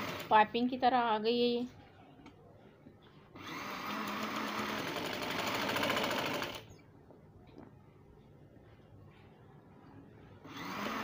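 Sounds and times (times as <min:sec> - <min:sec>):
sewing machine stitching: 0:00.0 - 0:00.4, 0:03.4 - 0:06.8, 0:10.5 - 0:11.0.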